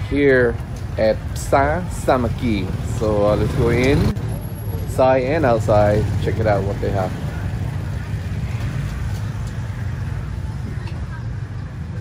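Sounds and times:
busy market street noise: 0:00.0 - 0:12.0.

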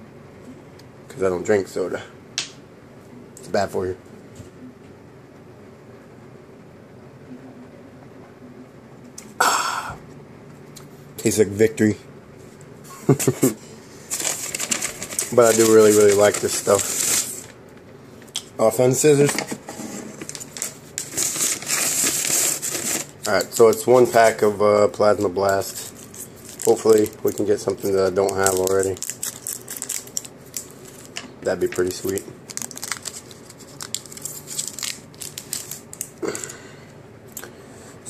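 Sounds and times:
man laughing: 0:12.9 - 0:13.6
foil wrapper crinkling: 0:14.1 - 0:17.6, 0:20.2 - 0:24.4, 0:25.0 - 0:36.2.

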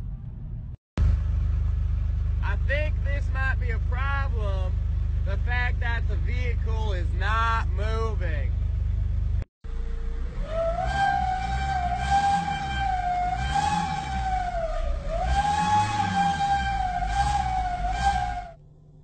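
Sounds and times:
high whine from car: 0:00.1 - 0:19.0
car engine running: 0:01.0 - 0:19.0.

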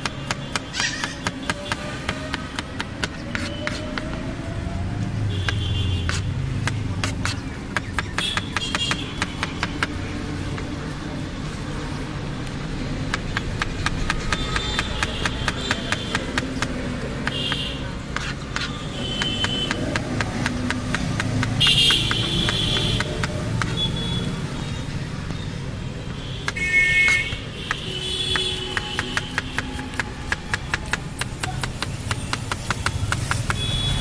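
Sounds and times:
knife chopping on cutting board: 0:00.0 - 0:04.2
low traffic rumble: 0:00.0 - 0:34.0.

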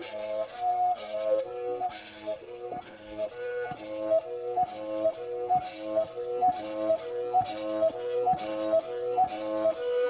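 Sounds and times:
mouth bow whistle-like melody: 0:00.0 - 0:10.0
stick rubbing bow string: 0:00.0 - 0:10.0.

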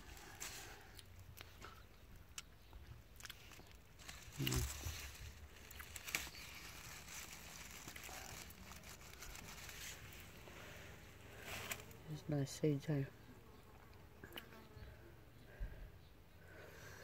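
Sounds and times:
rustling of plant leaves: 0:00.0 - 0:02.0, 0:03.0 - 0:12.9.

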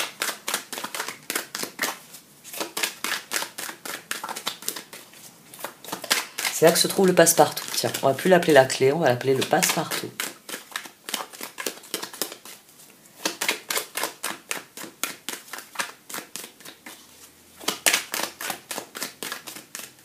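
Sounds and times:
cards being shuffled: 0:00.0 - 0:12.6, 0:13.2 - 0:20.0.

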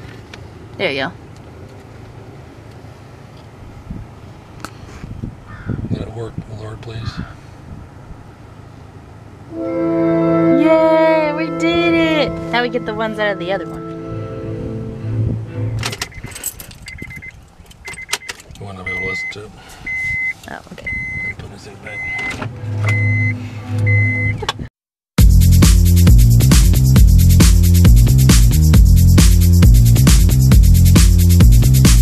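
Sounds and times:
music from car stereo: 0:09.5 - 0:15.9, 0:22.0 - 0:24.4, 0:25.2 - 0:32.0
short high beeps: 0:16.1 - 0:18.2, 0:18.8 - 0:21.4, 0:22.0 - 0:24.4.

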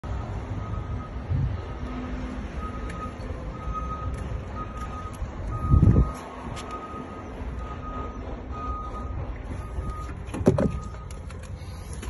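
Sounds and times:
reversing alarm beeping: 0:00.5 - 0:11.9.

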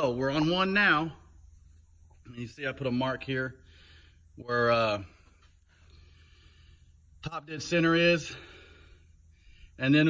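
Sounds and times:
faint low hum and hiss: 0:00.0 - 0:10.0.

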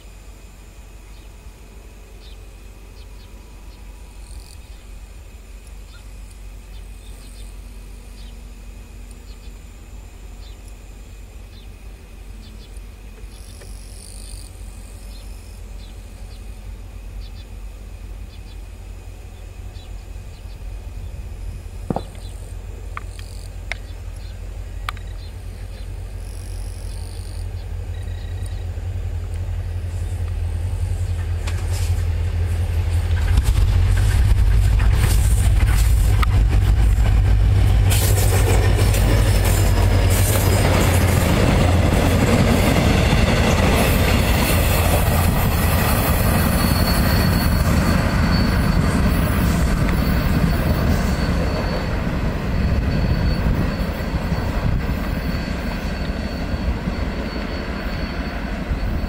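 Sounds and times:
diesel locomotive engine rumble: 0:00.0 - 0:59.0
thin high whine: 0:00.0 - 0:59.0
train wheels clattering on rails: 0:21.8 - 0:25.9, 0:30.2 - 0:59.0.

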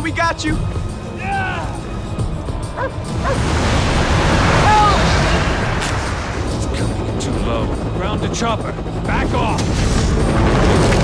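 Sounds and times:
avalanche roaring: 0:00.7 - 0:08.2, 0:08.9 - 0:11.0.

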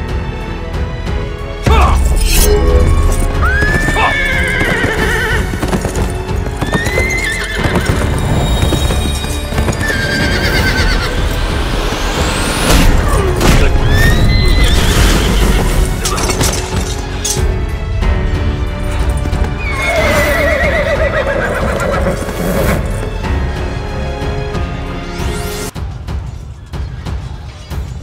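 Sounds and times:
background music: 0:00.0 - 0:28.0
horses whinnying: 0:03.4 - 0:08.4, 0:09.5 - 0:11.2, 0:19.6 - 0:22.9
hoofbeats: 0:03.4 - 0:11.5.

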